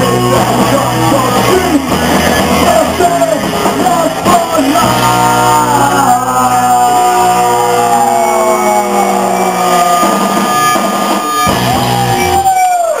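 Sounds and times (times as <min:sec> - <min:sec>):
electric guitars sliding down: 0:00.0 - 0:13.0
live punk rock band: 0:00.0 - 0:13.0.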